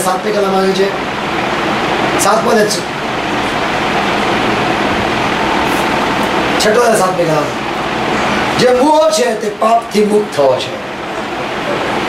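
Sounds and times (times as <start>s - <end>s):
steady rushing room noise: 0.0s - 12.0s.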